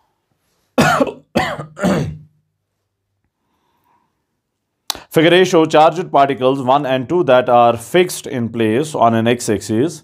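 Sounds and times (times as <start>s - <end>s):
man coughing: 0.8s - 2.4s.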